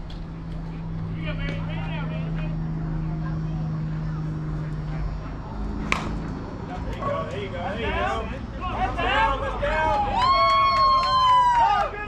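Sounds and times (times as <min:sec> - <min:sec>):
low engine hum: 0:00.0 - 0:11.9
voices calling out: 0:00.4 - 0:12.0.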